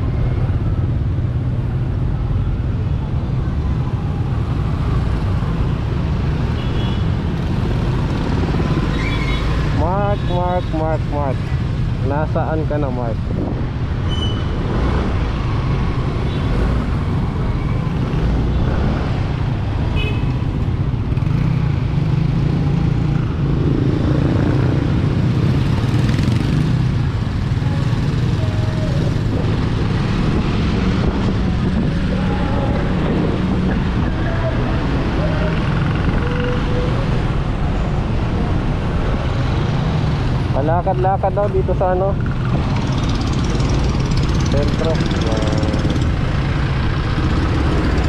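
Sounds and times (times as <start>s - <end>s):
wind and road noise: 0.0s - 48.0s
motorcycle engine drone: 41.5s - 48.0s.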